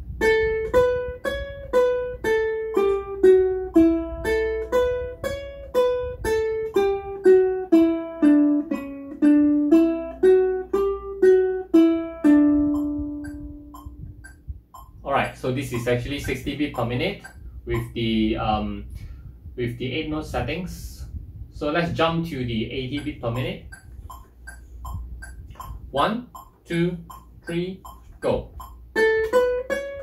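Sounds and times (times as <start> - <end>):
ukulele plucking scale: 0.0 - 18.6, 22.5 - 30.0
metronome ticking: 0.1 - 18.4, 22.3 - 30.0.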